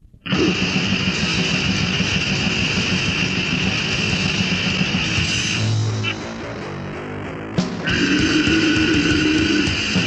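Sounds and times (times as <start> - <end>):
distorted electric guitar: 0.2 - 10.0.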